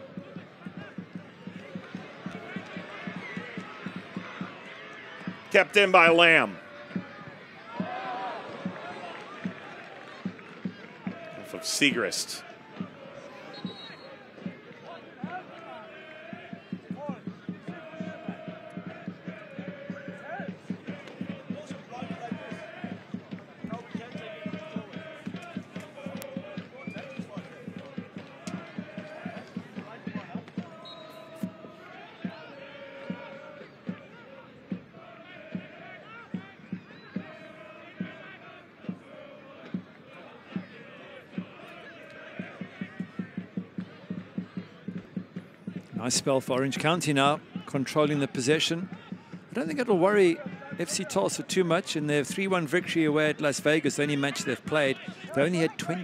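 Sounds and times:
crowd chanting: 0.0s - 48.1s, 53.5s - 56.0s.

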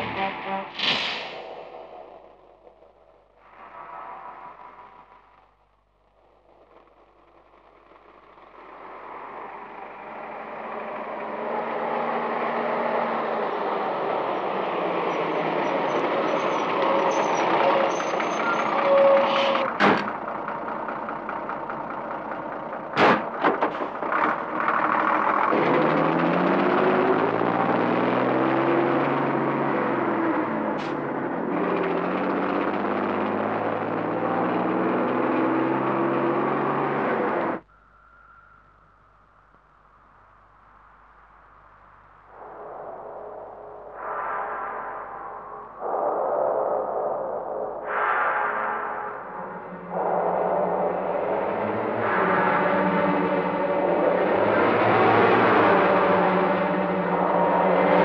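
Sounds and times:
bus engine running: 4.4s - 37.7s, 48.6s - 58.0s.

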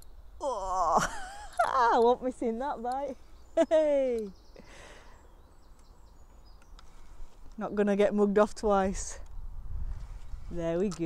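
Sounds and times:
faint bird chirps: 1.9s - 7.3s.

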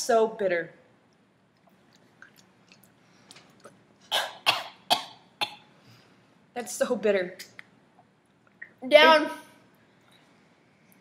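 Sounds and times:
person coughing: 4.1s - 5.7s.

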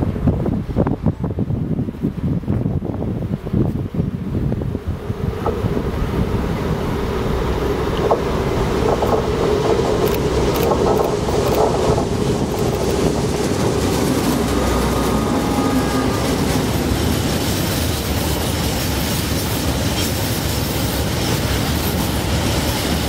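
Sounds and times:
diesel locomotive engine drone: 0.0s - 23.0s
wind buffeting microphone: 0.0s - 23.0s.

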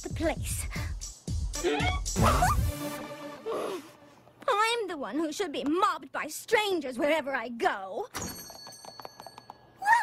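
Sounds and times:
background music: 0.0s - 4.4s
high whining vocal cry: 1.6s - 2.7s.

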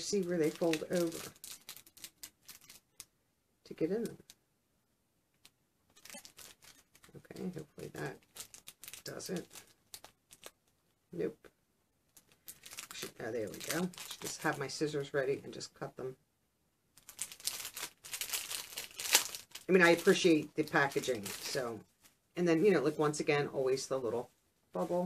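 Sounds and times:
packet crinkling and crackling: 0.0s - 3.2s, 5.4s - 11.0s, 12.1s - 14.7s, 16.9s - 22.2s.

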